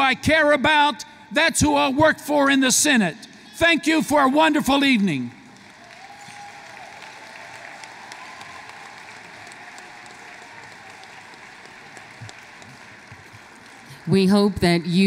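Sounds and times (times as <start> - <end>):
audience applauding: 4.8 - 14.3.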